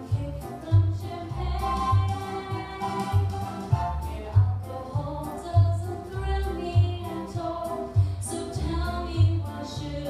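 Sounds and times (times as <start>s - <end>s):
musical accompaniment: 0.0s - 10.0s
woman singing show tune: 0.0s - 10.0s.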